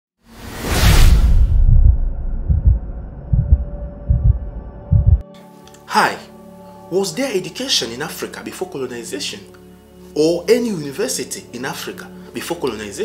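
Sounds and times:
whoosh: 0:00.3 - 0:03.7
deep heartbeat-like thumps: 0:01.2 - 0:05.2.

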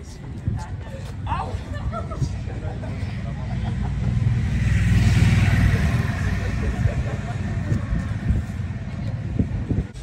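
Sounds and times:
vehicle passing by: 0:02.8 - 0:09.9.

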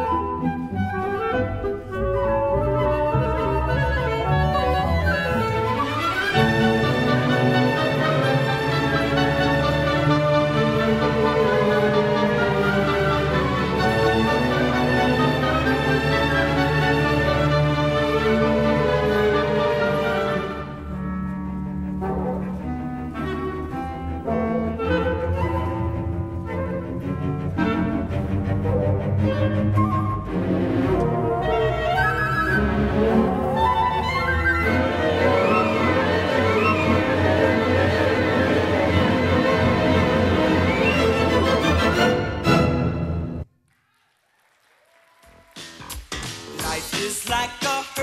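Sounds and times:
orchestral strings and brass: 0:00.0 - 0:43.5
audience applause: 0:43.6 - 0:46.5.

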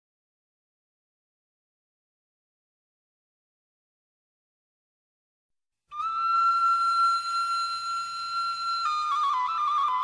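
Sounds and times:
solo flute: 0:05.9 - 0:10.0.

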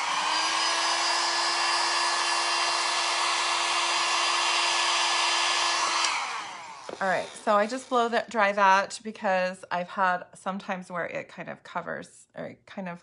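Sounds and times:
small electric blower humming: 0:00.0 - 0:08.3.

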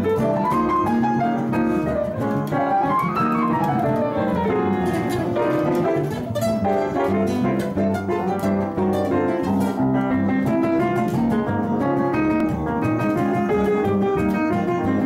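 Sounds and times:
jazz trio playing: 0:00.0 - 0:15.0.

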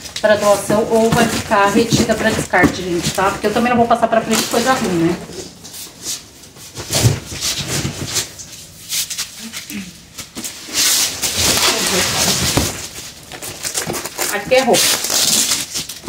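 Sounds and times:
rustling and scraping of cardboard: 0:00.0 - 0:09.6, 0:10.3 - 0:16.0.

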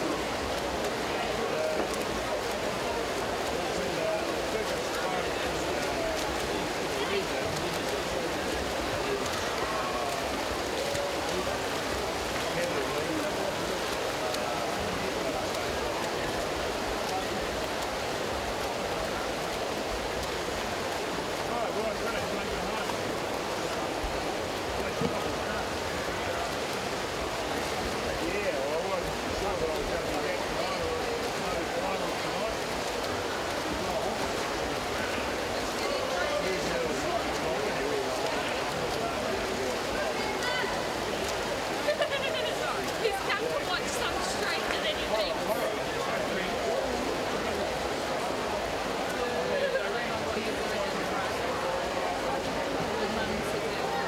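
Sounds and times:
murmur of spectators' voices: 0:00.0 - 0:54.0
swimmers splashing water: 0:00.0 - 0:54.0.

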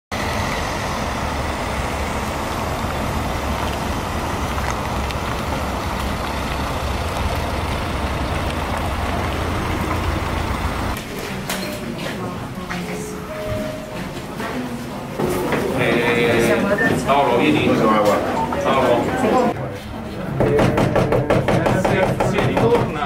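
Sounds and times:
car engines running: 0:00.1 - 0:11.1.

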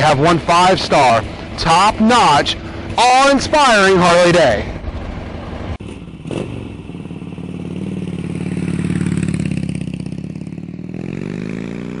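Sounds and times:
motorcycle engine revving: 0:05.4 - 0:12.0.

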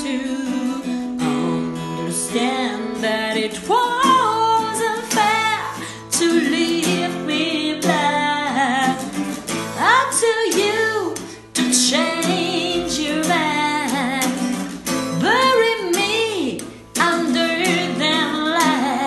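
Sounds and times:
acoustic guitar strummed and plucked: 0:00.0 - 0:19.0
woman singing a soft ballad: 0:00.0 - 0:19.0.

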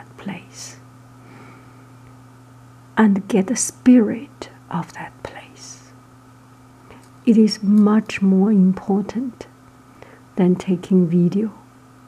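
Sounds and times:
soft whispery speech: 0:00.0 - 0:00.8, 0:03.0 - 0:06.0
steady low hum: 0:00.0 - 0:12.0.

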